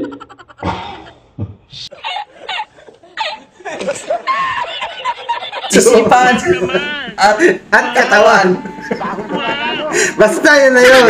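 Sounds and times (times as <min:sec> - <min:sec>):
man laughing in high-pitched bursts: 0:01.9 - 0:10.4.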